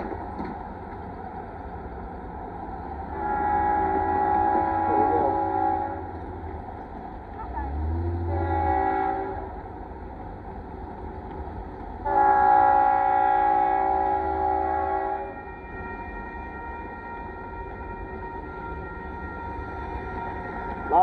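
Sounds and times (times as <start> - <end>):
low train rumble: 0.0 - 21.0
train air horn blasts: 3.1 - 6.2, 7.6 - 9.6, 12.0 - 21.0.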